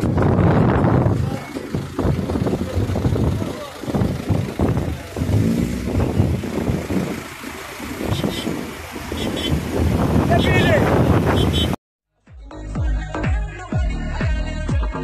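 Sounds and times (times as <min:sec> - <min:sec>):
car engines running: 0:00.0 - 0:11.8
people's voices: 0:00.3 - 0:11.5.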